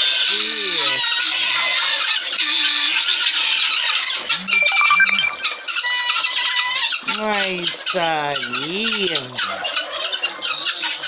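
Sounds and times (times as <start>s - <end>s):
short whistled notes: 4.4s - 5.6s.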